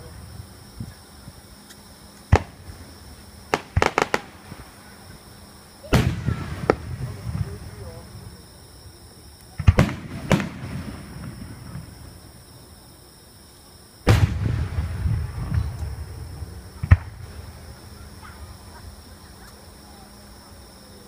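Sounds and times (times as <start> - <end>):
firework bangs: 2.1 - 8.5, 9.4 - 12.5, 14.0 - 19.3
rumbling echo: 14.1 - 18.8.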